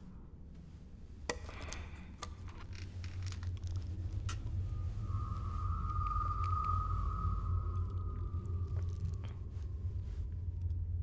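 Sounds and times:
steady low drone: 3.3 - 11.0
high held tone: 4.8 - 9.4.

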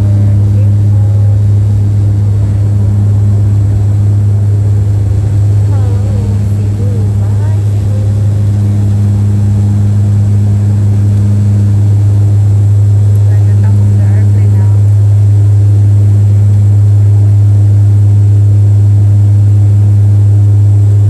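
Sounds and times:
aircraft engines droning in cabin: 0.0 - 21.0.

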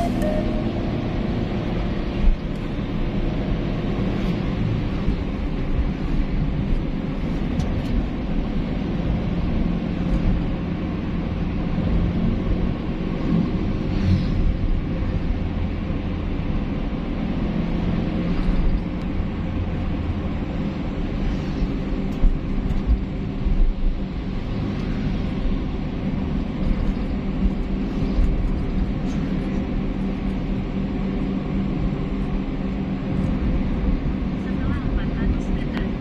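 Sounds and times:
road and engine rumble in car: 0.0 - 36.0.

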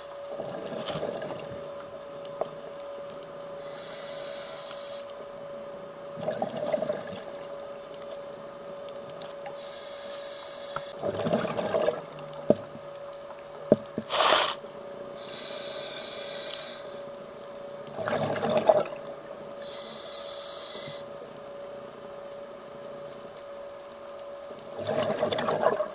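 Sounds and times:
steady hum: 0.0 - 25.9
regulator hissing inhalation: 3.6 - 5.1, 9.6 - 11.0, 15.2 - 17.0, 19.6 - 21.1
gurgling exhaled bubbles: 6.2 - 7.4, 11.0 - 12.1, 17.9 - 19.0, 24.8 - 25.9.

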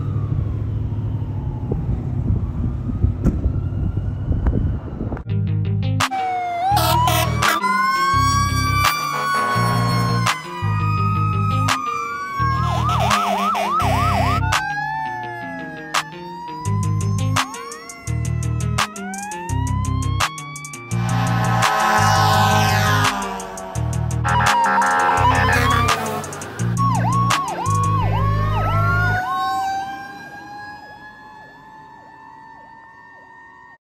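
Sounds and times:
fire engine siren: 0.0 - 5.3, 6.0 - 33.8
air horn blasts: 6.7 - 7.6, 9.1 - 9.9, 20.9 - 26.5.

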